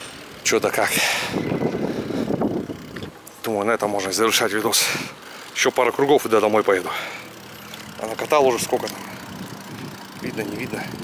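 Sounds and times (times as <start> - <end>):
bicycle rolling over concrete: 0.0 - 11.0.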